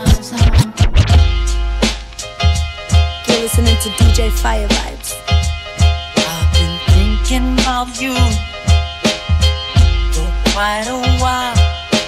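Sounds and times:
vinyl record scratching: 0.0 - 2.0
hip-hop music: 0.0 - 12.0.

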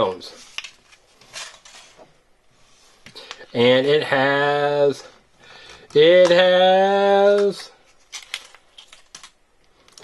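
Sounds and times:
plastic capsule and wrapper crinkling: 7.4 - 10.0.

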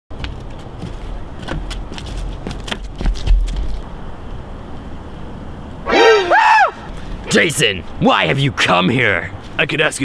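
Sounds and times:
footsteps on wooden planks: 0.1 - 3.9.

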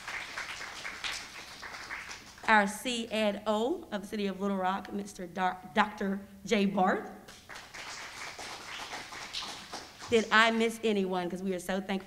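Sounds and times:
light applause: 0.0 - 2.5, 7.3 - 10.5
person announcing: 10.1 - 12.0.

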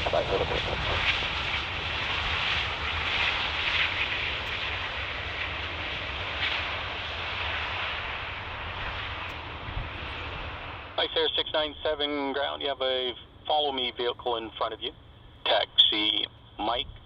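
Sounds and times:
jet engines roaring: 0.0 - 17.0.

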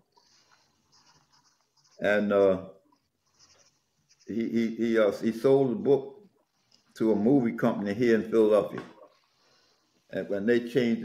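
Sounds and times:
light high hiss: 0.0 - 10.8.

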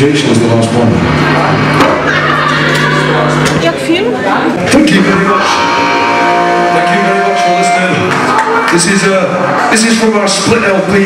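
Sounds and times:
amplifier hum: 0.0 - 11.0
crowd noise: 0.0 - 11.0.

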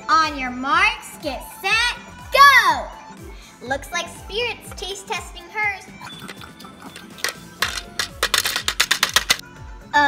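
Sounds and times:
background music: 0.0 - 10.0
plastic toy tapping and clattering: 6.3 - 9.4.

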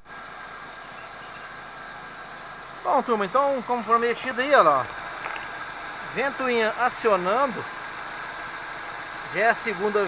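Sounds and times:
car engine idling: 0.0 - 10.0
radiator fan whir: 0.0 - 10.0.

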